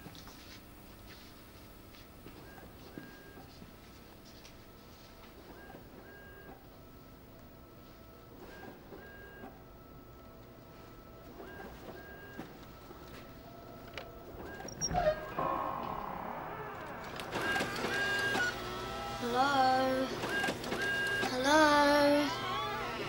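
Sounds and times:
photocopier running: 2.3 - 23.0
wavering drawn-out pitched tones: 14.6 - 20.2.

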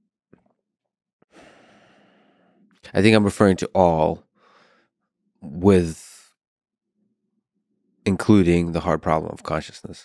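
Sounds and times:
man speaking: 2.9 - 4.2, 5.4 - 6.3, 8.1 - 10.0.

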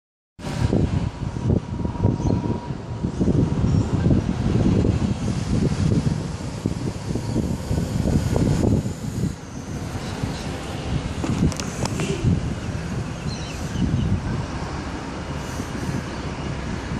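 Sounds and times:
wind buffeting microphone: 0.4 - 16.9.

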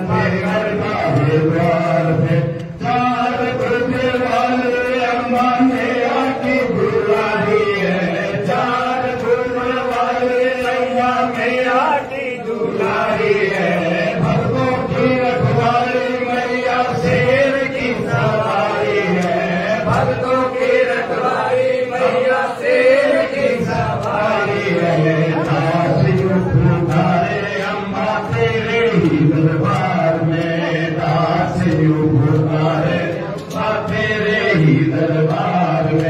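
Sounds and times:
men chanting: 0.0 - 36.0.

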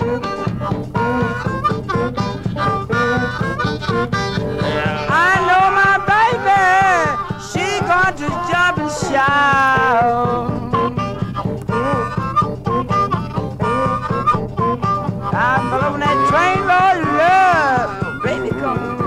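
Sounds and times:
guitar: 0.0 - 19.0
harmonica wailing: 0.0 - 19.0
steady drum beat: 0.0 - 19.0.

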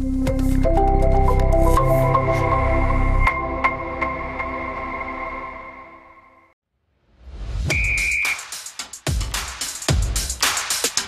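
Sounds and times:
electronic music with beat hits: 0.0 - 5.1, 7.7 - 11.0
whistle blast: 7.7 - 8.6.

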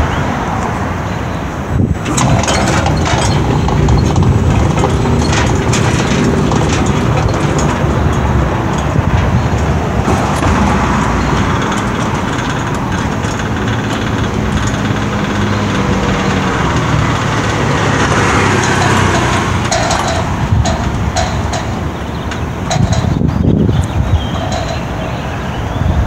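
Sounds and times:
electric gate mechanical drone: 1.5 - 26.0.

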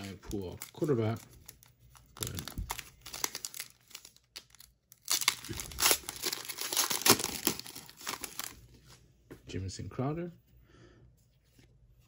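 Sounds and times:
foil wrapper tearing and crinkling: 0.0 - 8.6.

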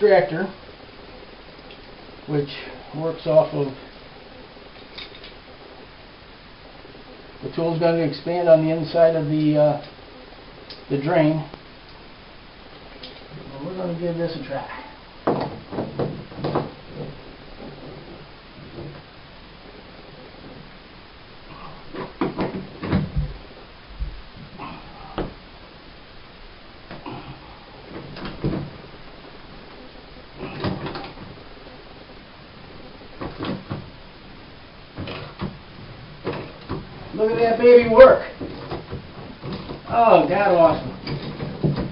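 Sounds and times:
dull thuds: 21.5 - 25.4.

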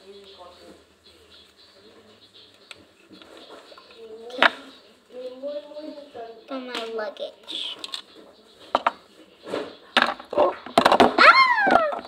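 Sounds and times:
plastic toy pieces knocking: 10.0 - 12.0
child exclamation: 11.2 - 12.0.

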